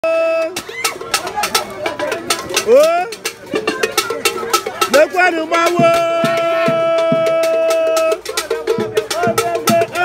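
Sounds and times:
voices calling: 0.0 - 10.0
sharp percussion strikes: 0.1 - 10.0.

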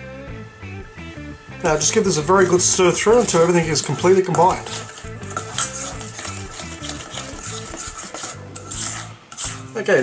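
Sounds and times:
utensil scraping metal bowl: 1.6 - 10.0.

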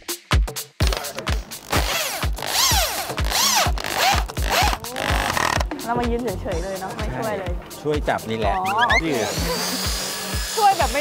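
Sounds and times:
background music with low thumps: 0.0 - 11.0
electric drill boring into wood: 1.6 - 5.7, 9.1 - 11.0.

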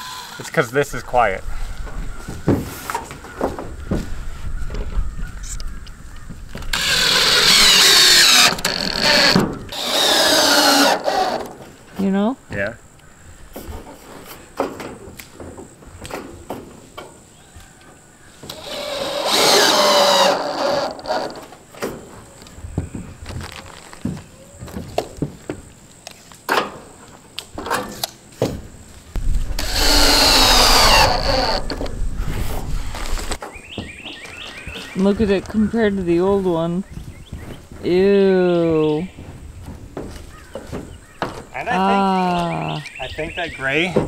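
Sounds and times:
drill driving screws into metal: 6.7 - 11.6, 18.5 - 21.5, 29.6 - 31.9.

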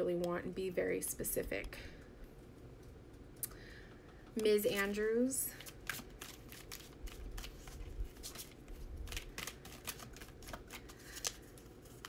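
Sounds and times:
cards being shuffled by hand: 4.7 - 12.0.

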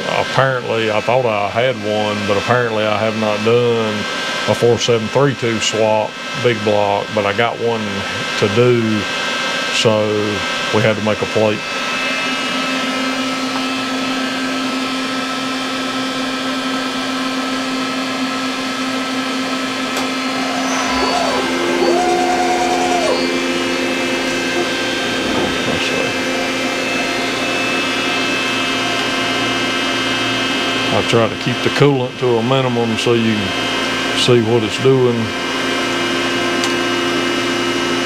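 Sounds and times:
milling machine whine: 9.0 - 31.1
rising machine tone: 19.9 - 28.2.

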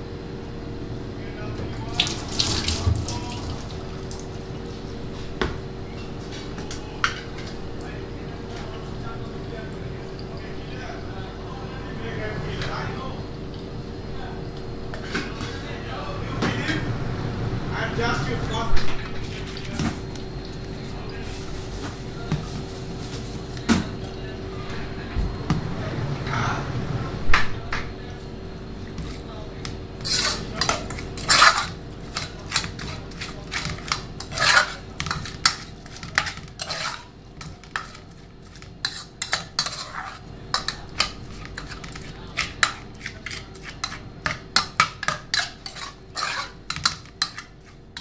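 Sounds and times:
steady hum: 0.0 - 48.0
faint voices: 5.7 - 38.2
metal spoon scraping saucepan: 30.0 - 48.0.

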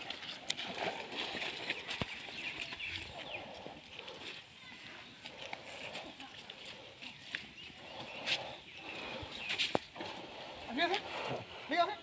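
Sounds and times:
log dragged through wet mud: 0.0 - 12.0.

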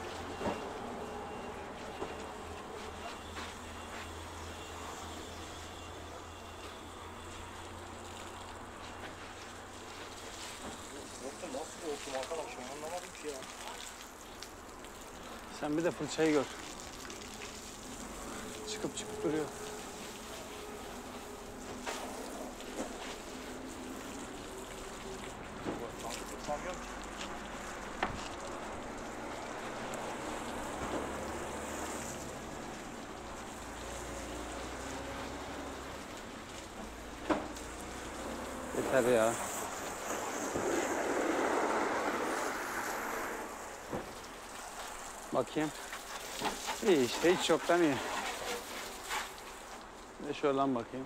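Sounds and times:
water spray rushing: 0.0 - 50.6
brush scrubbing truck cab: 45.8 - 49.9.

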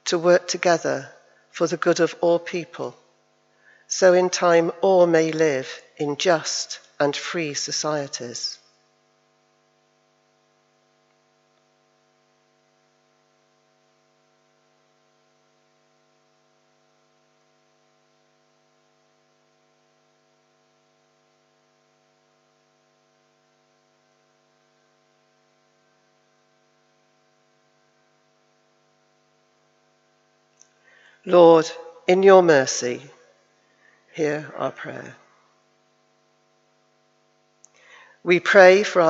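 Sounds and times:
faint electrical hum: 0.0 - 39.0.

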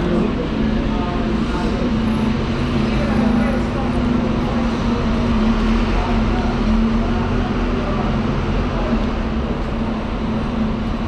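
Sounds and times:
general rumble: 0.0 - 11.0
indistinct voices of passers-by: 0.0 - 11.0.

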